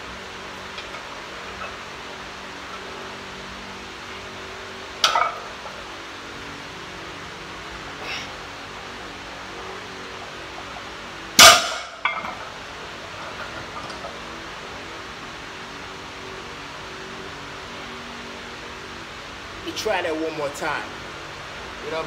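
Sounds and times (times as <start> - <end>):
barbell crashing on concrete: 5.0 - 5.5, 11.4 - 12.5.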